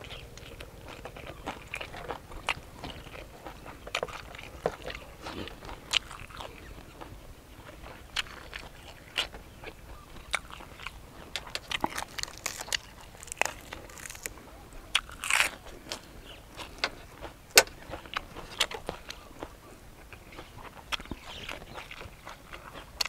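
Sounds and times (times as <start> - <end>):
man chewing crunchy food: 0.0 - 23.0.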